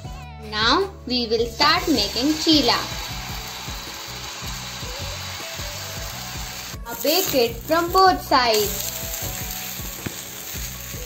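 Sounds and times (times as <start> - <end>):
batter sizzling on a pan: 1.5 - 11.0.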